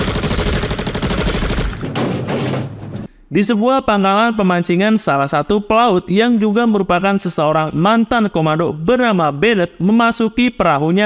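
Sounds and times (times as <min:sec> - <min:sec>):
rapid automatic gunfire: 0:00.0 - 0:02.6.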